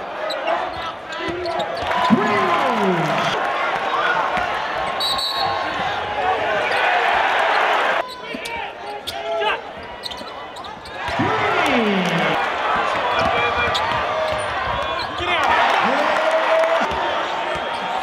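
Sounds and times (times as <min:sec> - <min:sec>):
basketball and players on court: 0:00.0 - 0:18.0
crowd noise and voices: 0:00.0 - 0:18.0.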